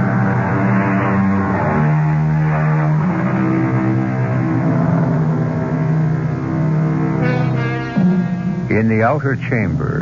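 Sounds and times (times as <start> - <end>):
loud held music chords: 0.0 - 10.0.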